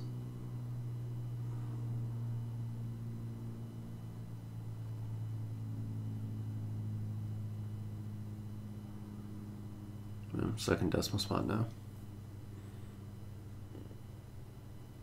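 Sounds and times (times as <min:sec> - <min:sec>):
wave driver humming: 0:00.0 - 0:15.0.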